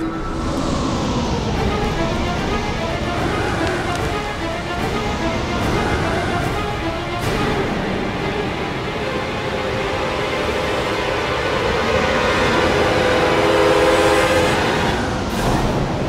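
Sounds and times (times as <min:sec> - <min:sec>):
low rumbling music with sustained tones: 0:00.0 - 0:16.0.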